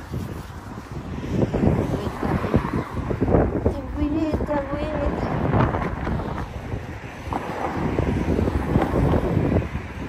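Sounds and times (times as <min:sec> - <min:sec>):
road traffic: 0:00.0 - 0:10.0
wind buffeting microphone: 0:00.0 - 0:10.0.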